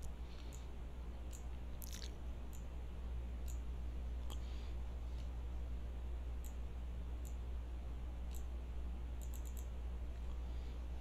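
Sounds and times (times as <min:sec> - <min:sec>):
steady low hum: 0:00.0 - 0:11.0
computer mouse clicking: 0:01.3 - 0:01.6, 0:07.2 - 0:07.4, 0:08.3 - 0:08.5, 0:09.2 - 0:09.7.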